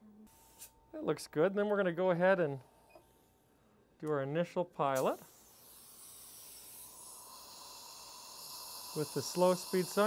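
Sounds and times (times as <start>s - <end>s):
dental suction hiss: 5.0s - 10.0s
dental drill whine: 5.2s - 10.0s.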